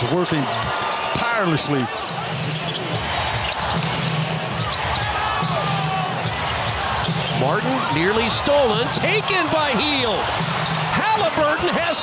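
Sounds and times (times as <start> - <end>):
arena crowd noise: 0.0 - 12.0
basketball bouncing on court: 2.0 - 11.0.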